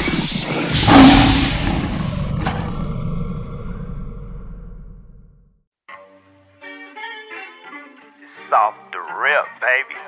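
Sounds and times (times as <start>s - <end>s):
sharp hit: 0.0s - 3.0s
whooshing rumble: 0.0s - 5.6s.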